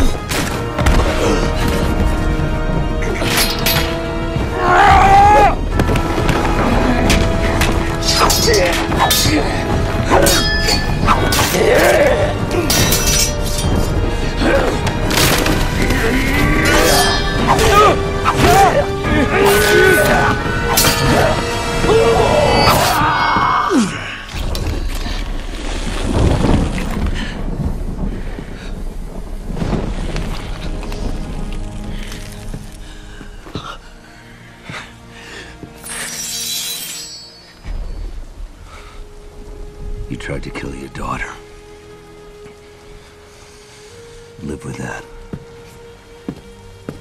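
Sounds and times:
wood cracking and splintering: 0.0 - 28.4
film score music: 0.0 - 47.0.

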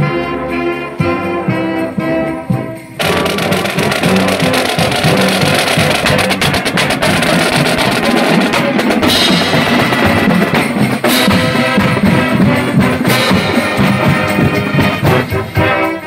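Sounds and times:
snare and bass drum beat: 2.0 - 16.0.

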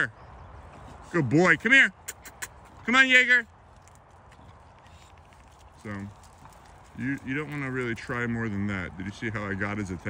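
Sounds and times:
outdoor background noise: 0.0 - 10.0
footsteps on gravel: 3.5 - 8.9.

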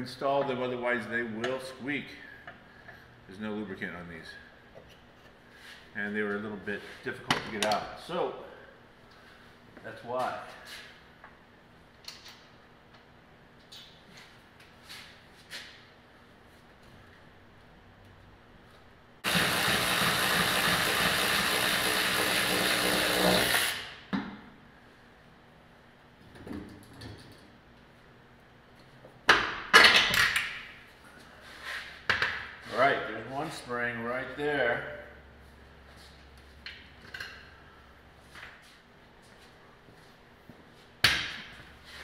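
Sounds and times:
power tool running: 19.2 - 24.0.

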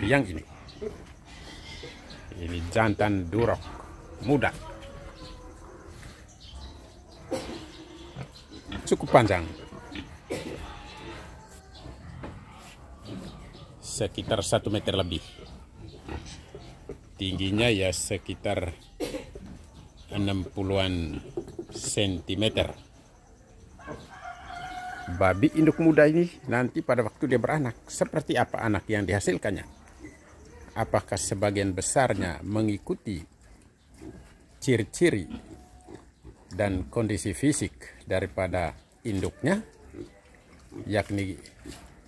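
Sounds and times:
pig grunting: 0.0 - 22.8, 33.2 - 42.0
rooster crowing: 23.8 - 26.0.

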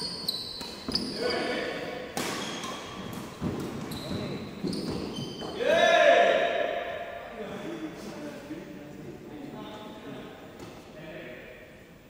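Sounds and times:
shoe squeaks on floor: 0.0 - 1.6, 2.3 - 5.6
players' voices: 1.0 - 2.0, 5.5 - 11.7
racket striking shuttlecock: 2.1 - 3.9
person shouting: 5.6 - 6.8.

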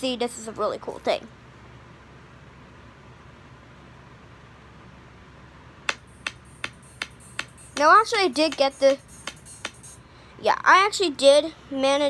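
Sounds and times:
sharp clicks: 5.9 - 10.0.

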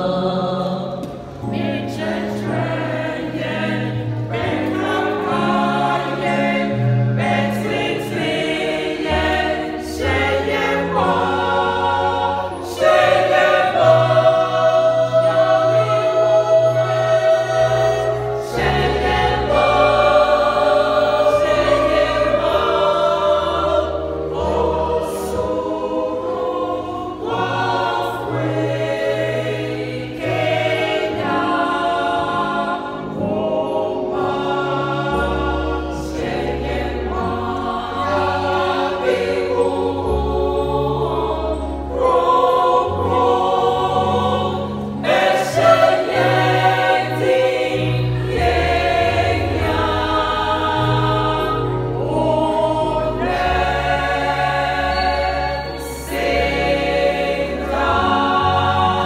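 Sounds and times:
choir singing gospel song: 0.0 - 59.0.

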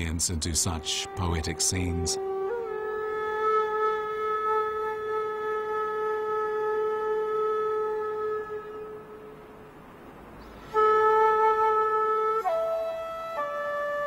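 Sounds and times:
flute holding long note: 0.7 - 9.8, 10.5 - 14.0.

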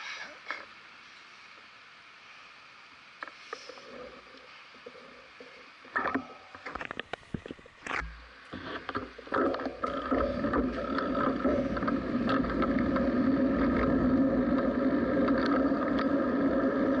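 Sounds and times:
bicycle rolling and wind noise: 6.1 - 17.0.

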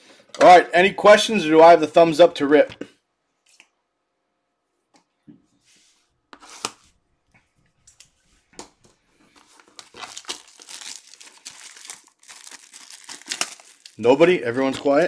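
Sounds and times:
plastic shrink-wrap crinkling: 9.3 - 15.0.

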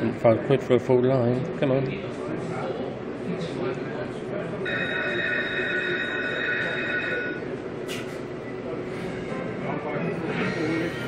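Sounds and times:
low background murmur: 0.0 - 11.0
slot machine electronic tone: 4.7 - 7.5.

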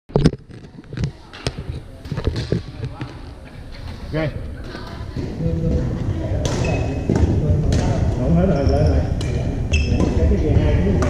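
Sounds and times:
players' voices: 1.1 - 11.0
rackets hitting shuttlecocks: 6.4 - 8.2.

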